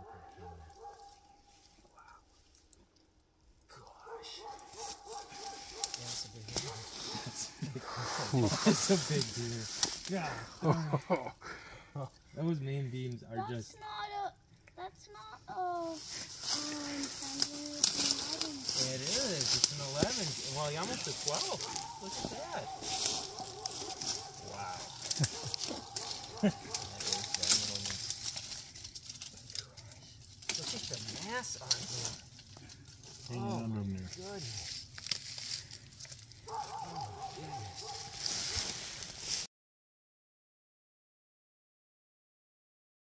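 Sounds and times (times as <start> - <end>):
people exclaiming: 7.2 - 9.3, 20.1 - 27.8.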